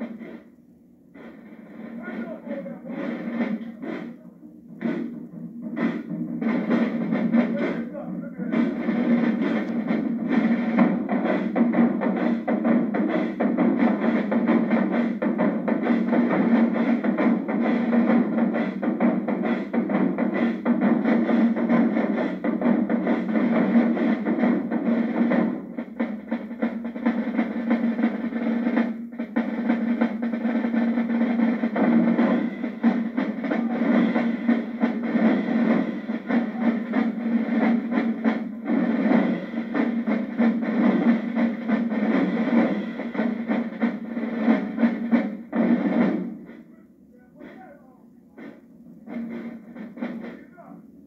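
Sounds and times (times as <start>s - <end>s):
bass drums: 0.0s - 50.7s
marching snare drums: 0.0s - 51.0s.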